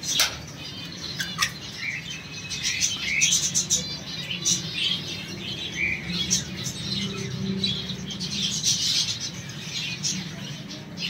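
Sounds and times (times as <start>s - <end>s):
finches chirping: 0.0s - 11.0s.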